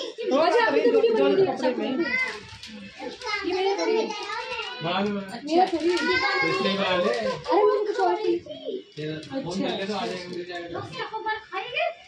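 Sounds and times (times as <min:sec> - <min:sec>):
child's voice: 0:02.0 - 0:04.8, 0:05.8 - 0:08.9.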